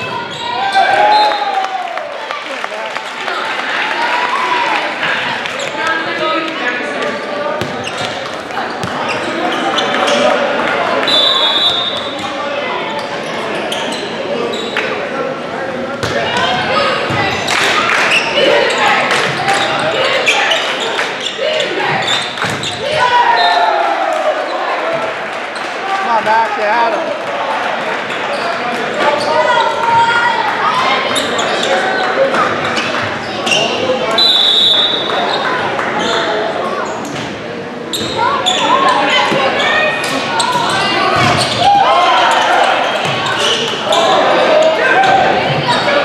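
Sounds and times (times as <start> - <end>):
players and crowd shouting: 0.0 - 14.7, 16.0 - 37.0, 38.0 - 46.0
referee's whistle: 11.0 - 12.1, 34.1 - 35.1.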